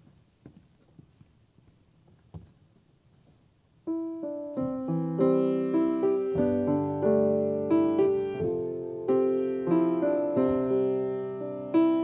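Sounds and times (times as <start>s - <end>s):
grand piano playing: 3.9s - 12.0s.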